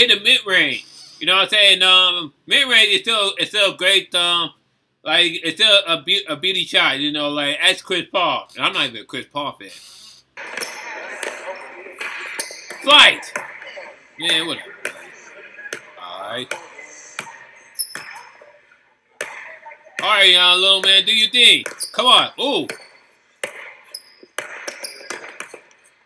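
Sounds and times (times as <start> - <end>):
steady room noise: 0.0 - 26.0
faint voices: 9.7 - 22.7
basketball bouncing on gym court: 10.5 - 11.4, 12.0 - 13.8, 16.5 - 18.3, 20.8 - 22.0, 22.7 - 25.8.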